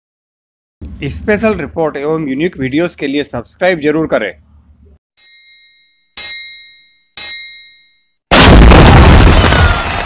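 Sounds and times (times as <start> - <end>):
bell-like timer dings: 5.2 - 8.2.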